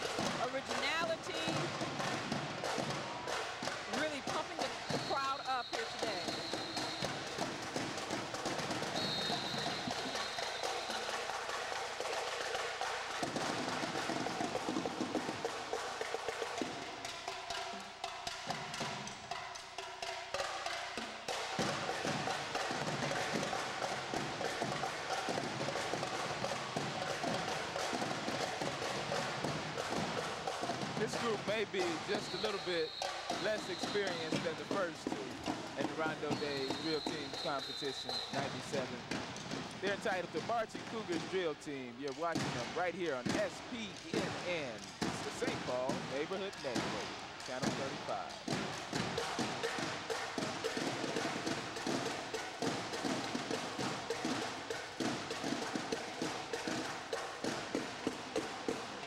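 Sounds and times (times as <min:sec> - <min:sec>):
marching drum line: 0:00.0 - 0:59.0.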